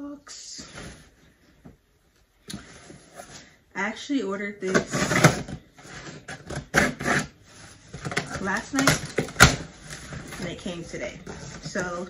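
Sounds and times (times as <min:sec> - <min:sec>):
packing tape ripping off box: 0:04.8 - 0:07.4.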